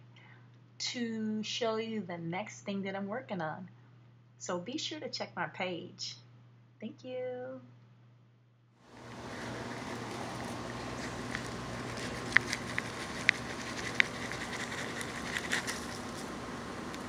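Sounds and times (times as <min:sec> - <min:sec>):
low hum: 0:08.9 - 0:17.0
sharp clicks and crackles: 0:09.1 - 0:16.3.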